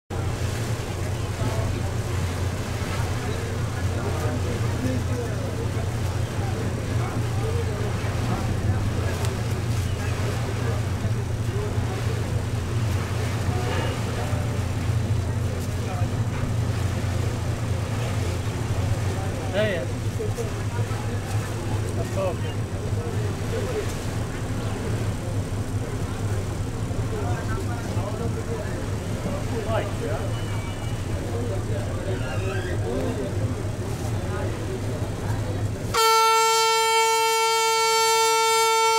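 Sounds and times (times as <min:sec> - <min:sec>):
boat engine drone: 0:00.1 - 0:38.9
people talking indistinctly: 0:00.2 - 0:36.0.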